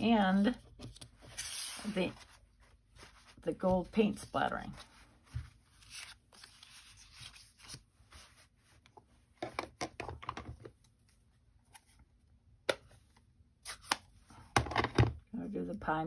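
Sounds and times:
paper rustling: 0:00.8 - 0:09.1.

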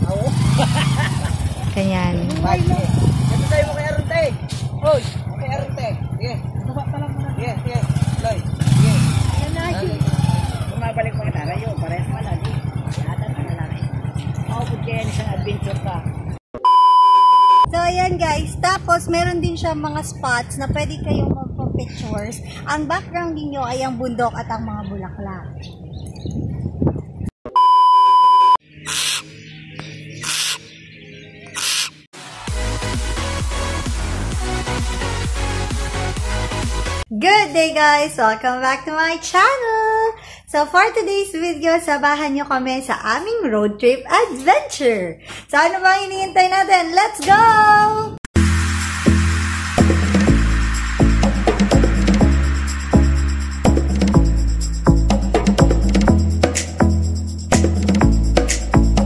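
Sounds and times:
people talking: 0:00.0 - 0:00.9, 0:01.7 - 0:25.5, 0:37.1 - 0:48.2
motorcycle engine revving: 0:00.0 - 0:16.4, 0:48.4 - 0:56.0
electronic beep: 0:16.6 - 0:17.8, 0:27.5 - 0:29.2
electronic dance music: 0:32.2 - 0:37.1, 0:48.4 - 0:59.0.

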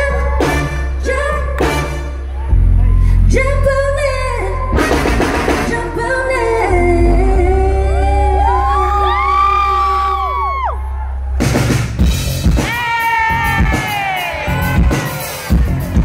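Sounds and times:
woman singing into microphone: 0:00.0 - 0:01.8, 0:03.1 - 0:10.4
live band with heavy bass: 0:00.0 - 0:16.0.

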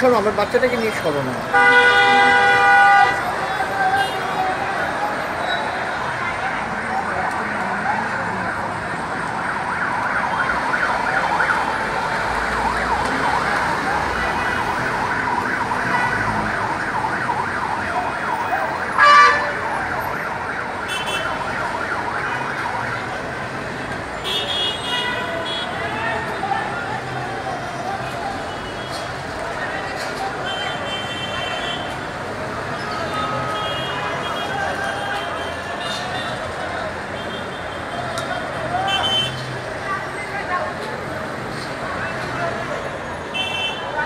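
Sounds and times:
city traffic noise: 0:00.0 - 0:44.0
emergency siren wailing: 0:01.4 - 0:44.0
loud siren blast: 0:03.0 - 0:23.7.

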